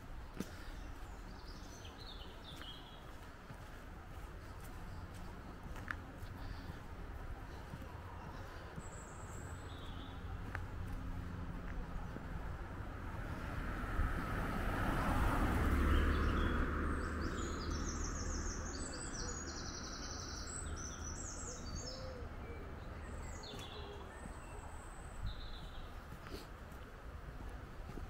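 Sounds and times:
songbirds singing: 0.0s - 13.4s, 14.2s - 27.9s.

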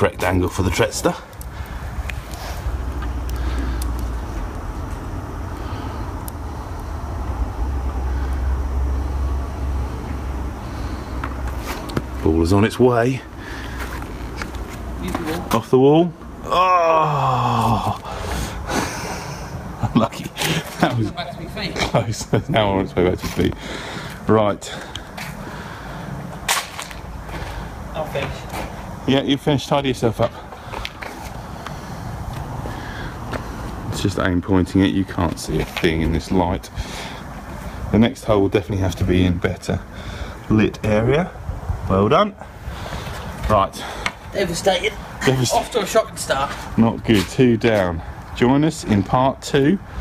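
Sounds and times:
low outdoor rumble: 0.0s - 50.0s.

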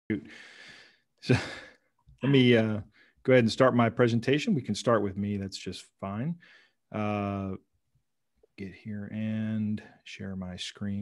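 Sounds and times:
man speaking: 2.2s - 7.7s, 8.6s - 11.0s.

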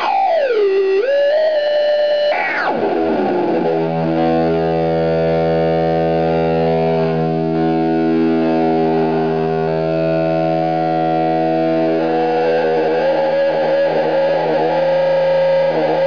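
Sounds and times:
distorted electric guitar drone: 0.0s - 16.0s.

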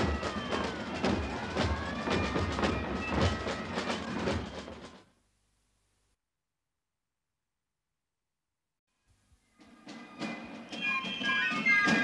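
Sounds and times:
marching drum strokes: 0.0s - 5.0s.

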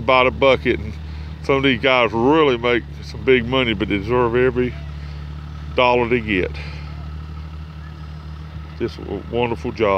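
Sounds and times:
vehicle engine idling: 0.0s - 9.9s.

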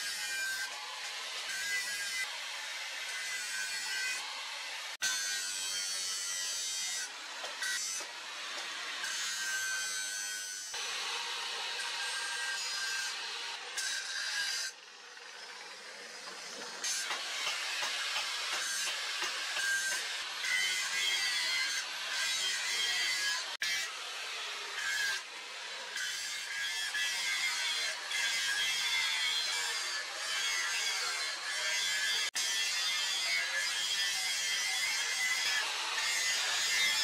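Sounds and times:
angle grinder grinding metal: 0.0s - 37.0s.

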